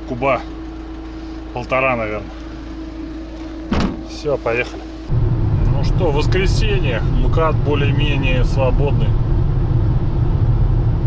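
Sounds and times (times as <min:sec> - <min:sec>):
road and engine noise in vehicle: 0:00.0 - 0:11.0.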